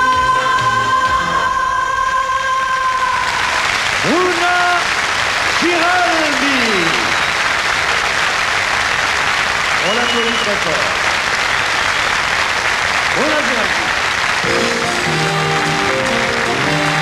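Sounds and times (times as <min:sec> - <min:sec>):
audience applauding: 0:02.9 - 0:17.0.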